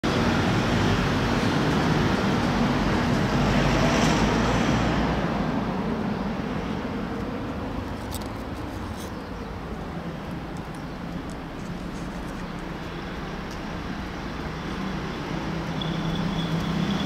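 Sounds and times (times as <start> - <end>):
vehicle passing with tyre noise: 0.0 - 17.0.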